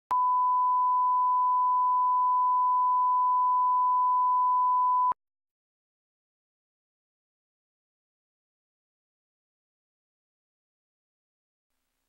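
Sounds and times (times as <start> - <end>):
steady test tone beep: 0.1 - 5.2.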